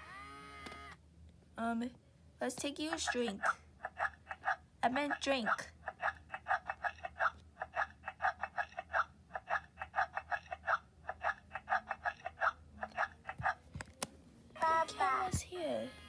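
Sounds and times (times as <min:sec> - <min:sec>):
electronic doll baby voice: 0:14.6 - 0:16.0.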